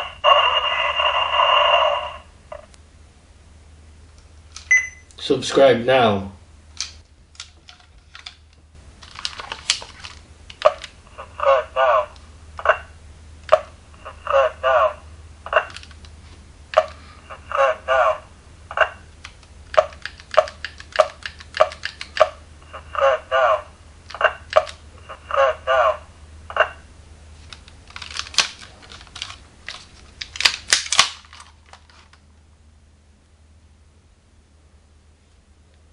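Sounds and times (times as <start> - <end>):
plastic toy clicks and rattles: 19.8 - 22.2, 27.9 - 32.1.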